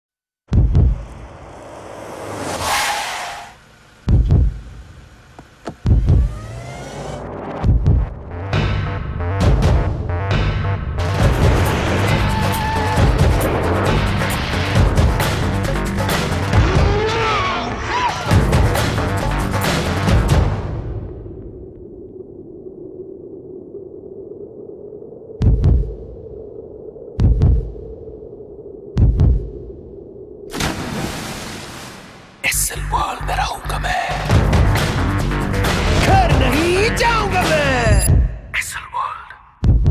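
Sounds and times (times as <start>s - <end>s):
deep double thump: 0.5s - 1.3s, 4.1s - 4.6s, 5.6s - 6.4s
heartbeat double thumps: 0.5s - 1.3s, 4.1s - 4.8s, 5.6s - 6.6s, 7.6s - 11.7s, 25.4s - 26.2s, 27.2s - 28.0s, 28.9s - 29.8s, 34.3s - 38.5s, 39.6s - 39.9s
car engine revving: 0.6s - 9.4s
steady low hum: 3.6s - 8.4s.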